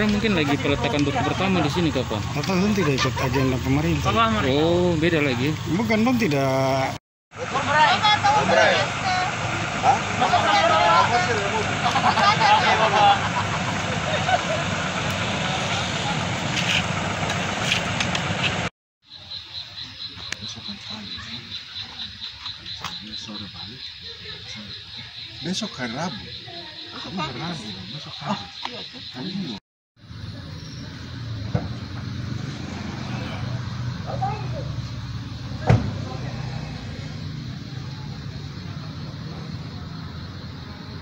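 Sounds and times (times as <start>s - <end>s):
engine running: 0.0s - 18.7s, 30.0s - 40.9s
low engine-like rumble: 7.4s - 18.7s.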